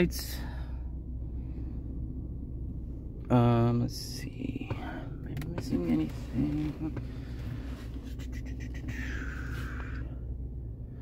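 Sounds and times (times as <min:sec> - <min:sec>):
faint whine: 0:00.0 - 0:11.0
pickup engine idling: 0:00.0 - 0:11.0.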